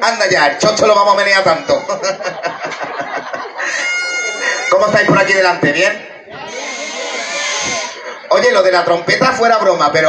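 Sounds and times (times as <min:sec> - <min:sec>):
audience laughter: 0:01.6 - 0:05.1, 0:06.2 - 0:08.3.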